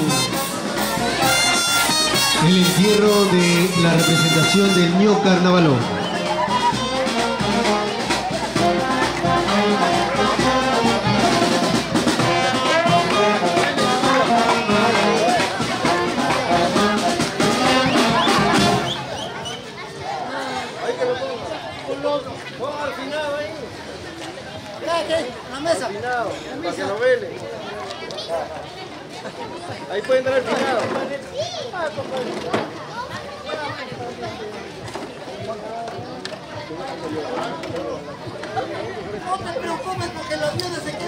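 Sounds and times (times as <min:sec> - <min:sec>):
wind band playing a tune: 0:00.0 - 0:19.5
crowd chatter: 0:00.0 - 0:41.0.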